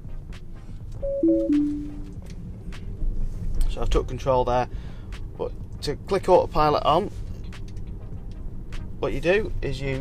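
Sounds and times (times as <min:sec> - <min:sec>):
short falling chime: 0:01.0 - 0:02.1.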